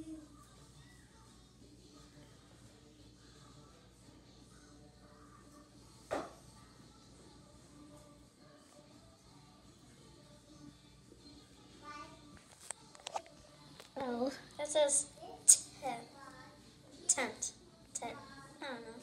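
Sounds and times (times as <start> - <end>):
faint background music: 0.0 - 19.0
faint voice: 0.0 - 19.0.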